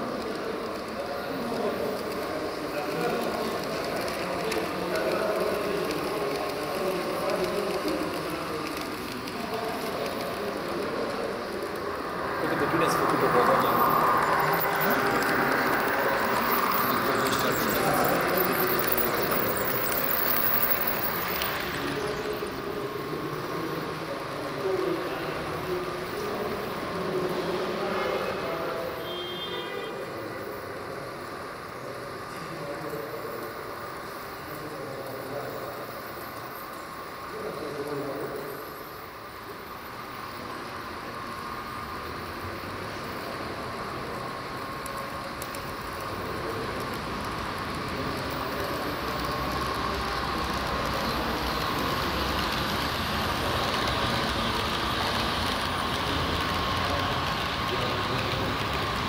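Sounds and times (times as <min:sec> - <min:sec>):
model train rolling on track: 0:00.0 - 0:59.0
people talking: 0:00.0 - 0:59.0
high-pitched train toot: 0:27.8 - 0:30.4.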